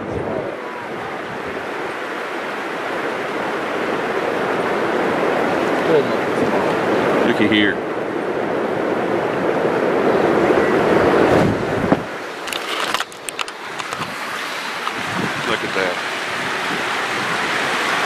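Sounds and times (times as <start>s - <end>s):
river water rushing: 0.0s - 18.0s
wind on microphone: 0.0s - 18.0s
camera handling clicks and knocks: 12.5s - 14.1s.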